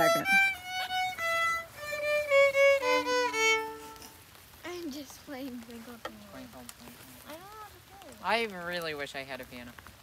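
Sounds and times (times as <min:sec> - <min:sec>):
violin playing held notes: 0:00.0 - 0:04.2.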